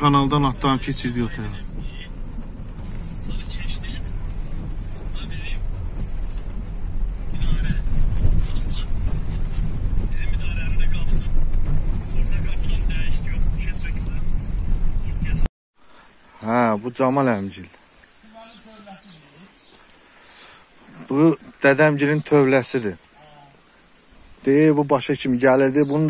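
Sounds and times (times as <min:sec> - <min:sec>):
car rumbling in motion: 0:00.0 - 0:15.5
tyres crackling on rough ground: 0:00.0 - 0:15.5, 0:16.4 - 0:26.0.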